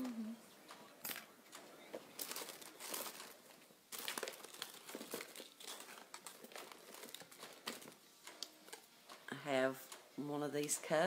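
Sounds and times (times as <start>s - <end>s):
packaging crinkling: 1.0s - 9.3s.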